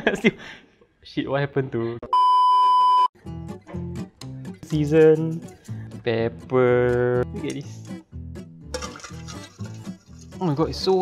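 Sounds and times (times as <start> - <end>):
background music: 3.2 - 11.0
whisk scraping metal bowl: 8.8 - 11.0.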